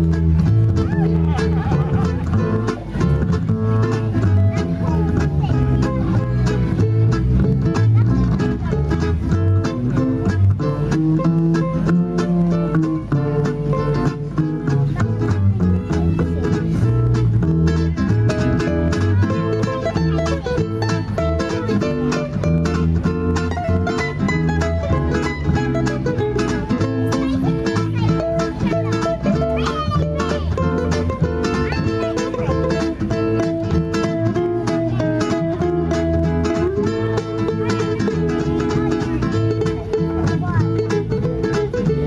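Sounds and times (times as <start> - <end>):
plucked upright double bass: 0.0 - 42.0
ukuleles strummed and picked: 0.0 - 42.0.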